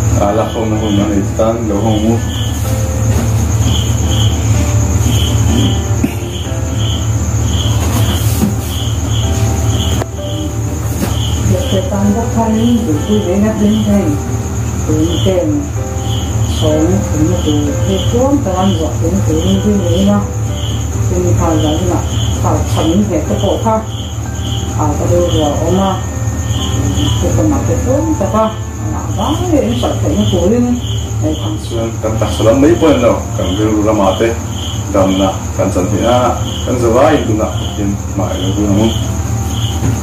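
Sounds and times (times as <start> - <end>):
insects chirping: 0.0 - 40.0
low steady hum: 0.0 - 40.0
steady high trill: 0.0 - 40.0.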